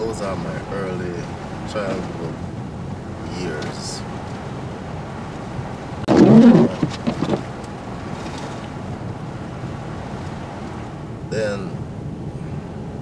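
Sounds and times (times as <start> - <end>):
wind noise on microphone: 2.3 - 13.0.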